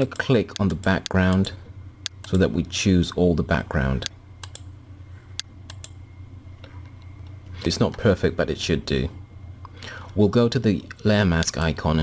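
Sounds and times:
low steady hum: 0.0s - 12.0s
computer mouse clicks: 4.4s - 4.7s, 5.4s - 6.0s.

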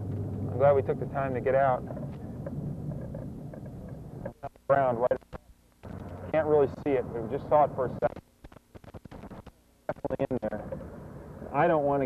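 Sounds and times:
car engine hum: 0.0s - 5.0s, 5.8s - 8.1s, 10.5s - 12.0s.

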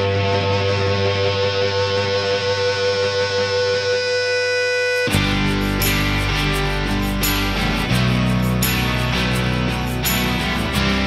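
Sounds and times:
guitar background music: 0.0s - 11.0s.

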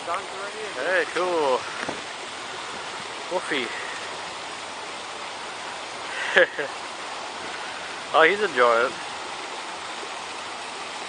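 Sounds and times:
waterfall rushing and splashing: 0.0s - 11.0s.

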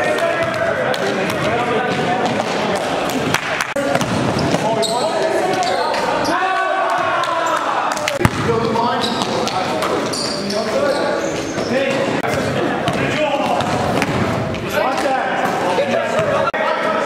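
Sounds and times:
basketball bouncing on court: 0.3s - 2.5s, 3.8s - 4.8s, 8.2s - 9.6s, 11.5s - 14.6s
sneaker squeaks: 4.0s - 6.4s, 8.9s - 12.5s.

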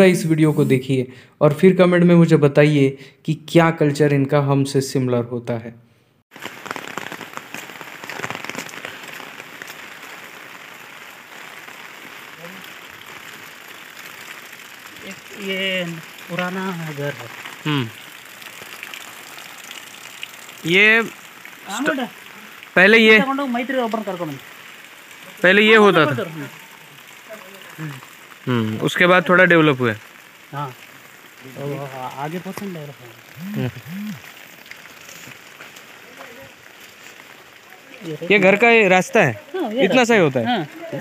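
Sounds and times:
steady rain falling: 6.3s - 41.0s
man's voice short sounds: 17.6s - 18.0s, 33.4s - 34.2s.

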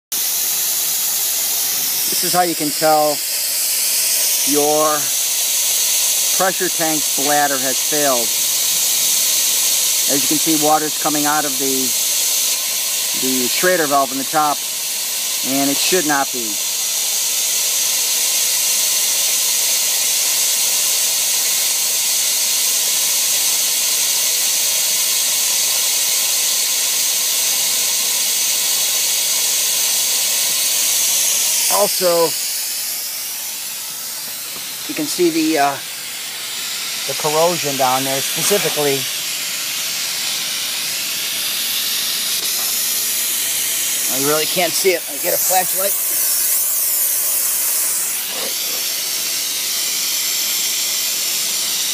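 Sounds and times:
water spraying from valve: 0.1s - 51.9s.

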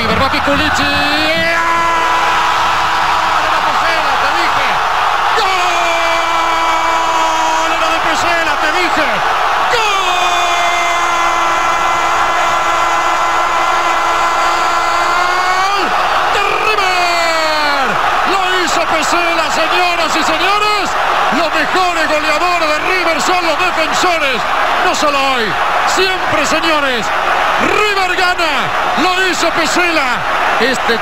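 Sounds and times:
commentator shouting goal: 0.0s - 2.4s, 3.2s - 31.0s
stadium crowd cheering: 0.0s - 31.0s.

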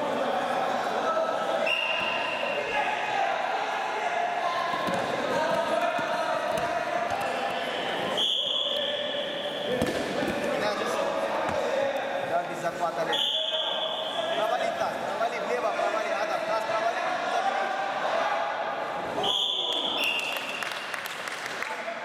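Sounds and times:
coaches and spectators calling out: 0.0s - 20.2s.

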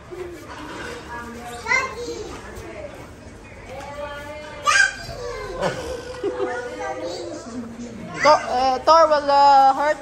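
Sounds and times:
small children's voices: 0.0s - 9.0s
child's high-pitched voice: 4.6s - 8.6s.

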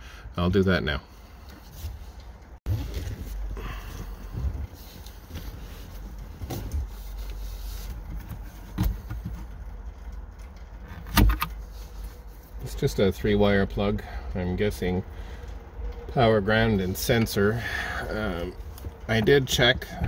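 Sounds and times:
low handling rumble: 0.5s - 20.0s.

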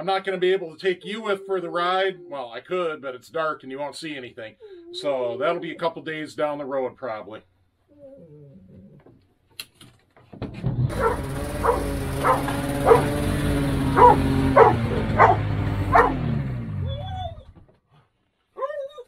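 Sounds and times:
snowmobile engine running: 10.9s - 16.9s
dog barking: 11.0s - 13.1s, 14.0s - 16.2s.

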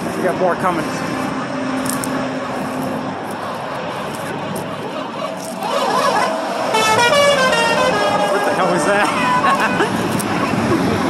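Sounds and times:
trucks passing on highway: 0.0s - 11.0s
truck horns honking: 0.4s - 11.0s.

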